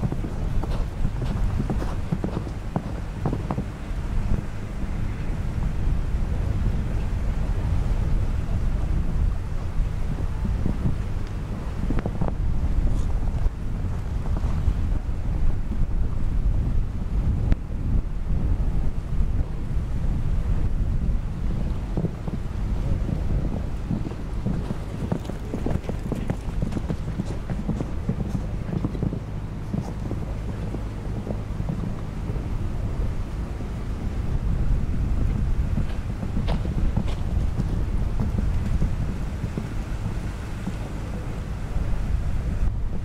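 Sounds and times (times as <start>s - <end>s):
horse hoofbeats on sand: 0.0s - 7.0s, 7.9s - 15.9s, 21.5s - 42.0s
wind buffeting microphone: 0.0s - 43.0s.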